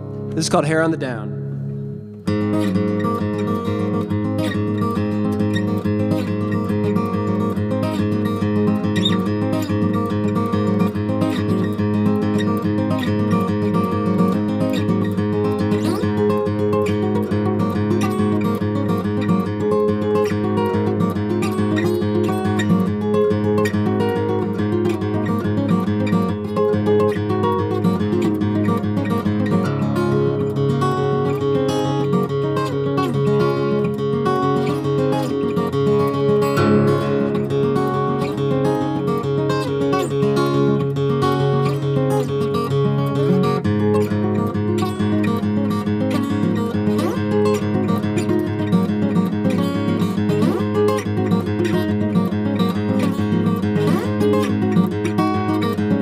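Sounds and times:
fingerstyle acoustic guitar: 0:00.0 - 0:56.0.

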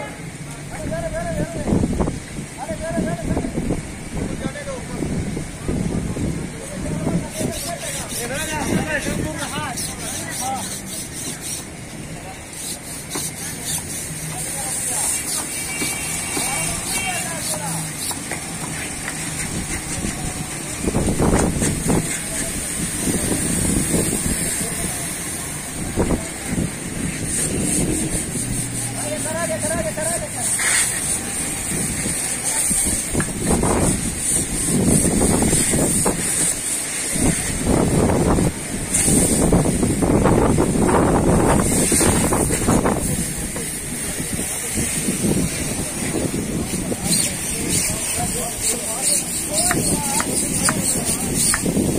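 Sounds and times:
people talking: 0:00.0 - 0:37.8, 0:40.0 - 0:51.9
water spray hissing: 0:01.7 - 0:51.9.

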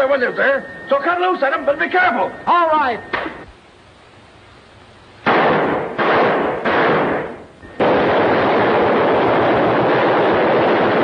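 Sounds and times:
gunshots ringing: 0:05.2 - 0:11.0.

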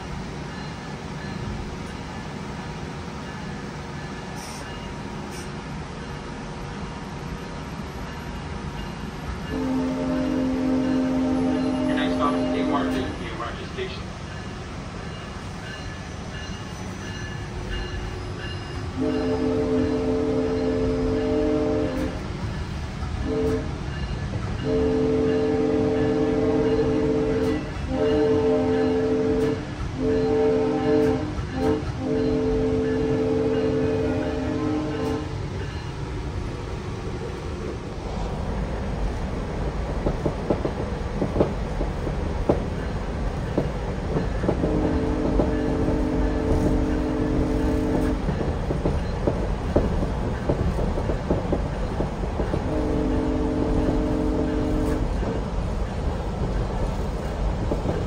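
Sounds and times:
train car rumble: 0:00.0 - 0:58.0
train horn blasts: 0:09.4 - 0:14.0, 0:17.7 - 0:22.2, 0:23.2 - 0:24.0, 0:24.6 - 0:35.4, 0:44.6 - 0:48.4, 0:52.5 - 0:55.4
wheels clicking over rail joints: 0:39.0 - 0:58.0.

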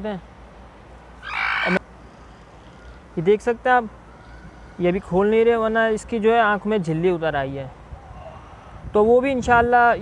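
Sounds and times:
chicken squawk: 0:01.2 - 0:01.8.

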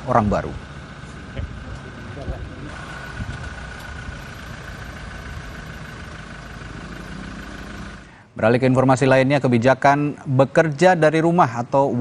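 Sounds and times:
car engine idling: 0:00.0 - 0:08.4.

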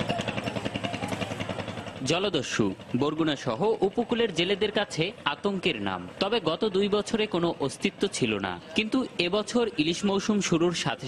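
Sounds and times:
engine chugging steadily: 0:00.0 - 0:11.0.

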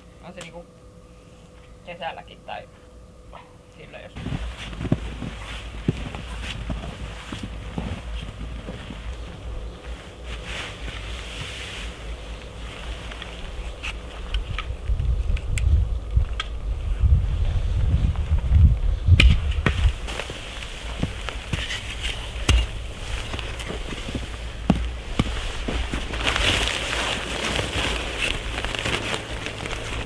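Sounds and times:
wind rumble on microphone: 0:13.5 - 0:30.0.

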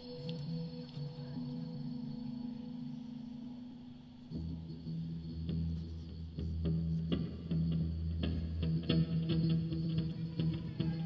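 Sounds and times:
droning chord: 0:00.0 - 0:11.0
plucked electric guitar: 0:00.0 - 0:11.0.

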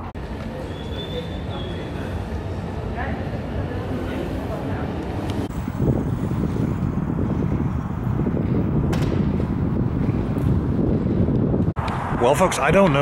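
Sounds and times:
train low rumble: 0:00.0 - 0:11.7
wind noise on microphone: 0:04.4 - 0:13.0.

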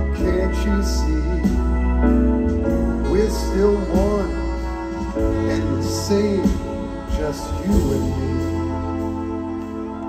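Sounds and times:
held organ chords: 0:00.0 - 0:10.0
steady bass: 0:00.0 - 0:10.0.

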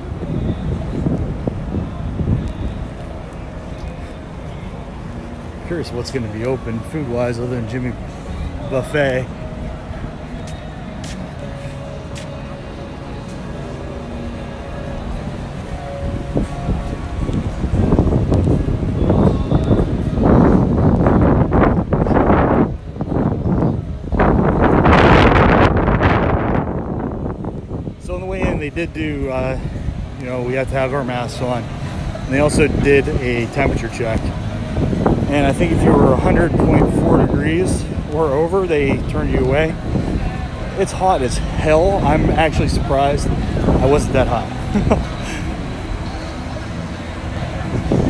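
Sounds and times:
wind buffeting microphone: 0:00.0 - 0:12.6, 0:13.2 - 0:48.0.

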